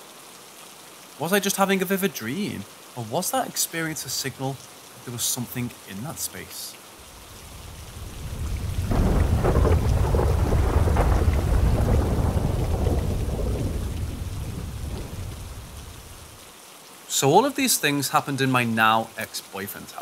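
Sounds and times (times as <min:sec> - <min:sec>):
steady rain: 0:00.0 - 0:20.0
rolling thunder: 0:07.1 - 0:16.4.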